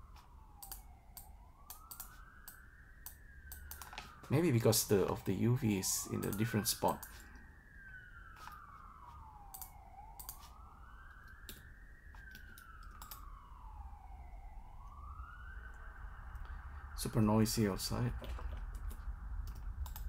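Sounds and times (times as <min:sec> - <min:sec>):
faint emergency siren wailing: 0:00.0 - 0:20.0
sharp clicks: 0:00.6 - 0:04.1, 0:09.5 - 0:10.5, 0:11.1 - 0:13.3, 0:18.2 - 0:20.0.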